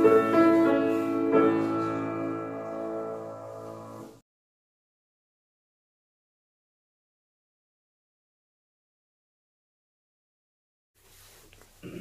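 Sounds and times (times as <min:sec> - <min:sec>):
piano chord held: 0:00.0 - 0:04.2.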